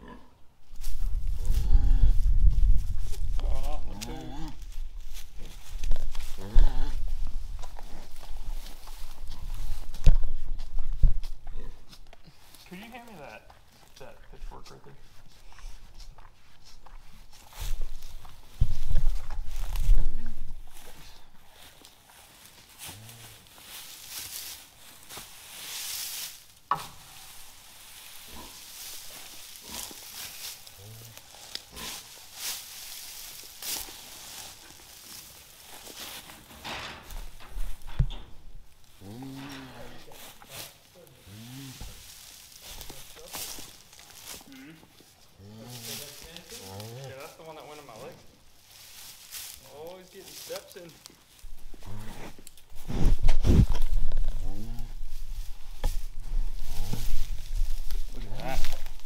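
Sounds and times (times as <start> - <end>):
straw rustling: 0.0 - 59.0
microphone handling rumble: 0.7 - 11.9, 17.6 - 20.8, 51.5 - 59.0.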